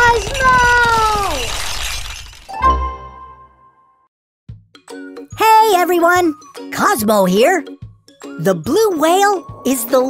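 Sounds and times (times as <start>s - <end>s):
shattering clattering crash: 0.0s - 2.7s.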